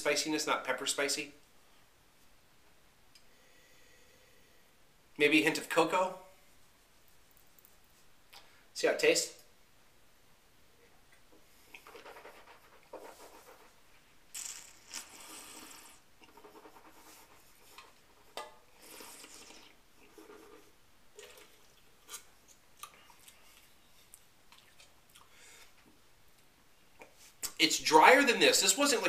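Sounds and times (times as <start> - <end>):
airy slurps and breaths: 18.7 - 20.1.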